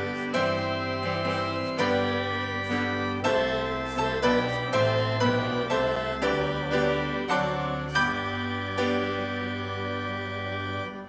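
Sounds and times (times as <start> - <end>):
organ chord: 0.0 - 11.0.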